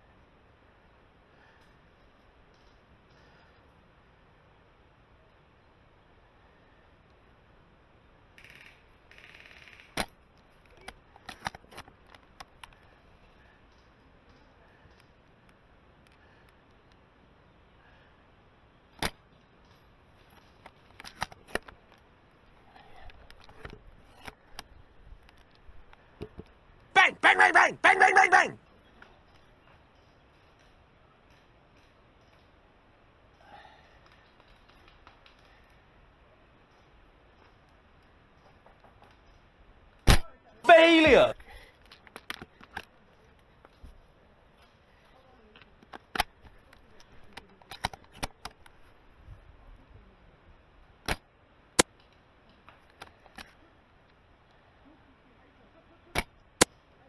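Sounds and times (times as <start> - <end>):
clicks and knocks of rifle handling: 8.4 - 13.0, 18.9 - 22.1, 22.8 - 26.6, 29.0 - 32.6, 41.4 - 48.9, 51.8 - 54.2
brief shout: 27.0 - 28.6, 40.6 - 41.4
airsoft rifle snap: 40.0 - 40.3.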